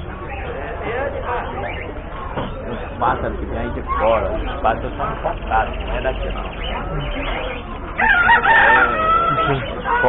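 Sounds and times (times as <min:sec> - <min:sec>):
rooster crowing: 0:08.0 - 0:10.0.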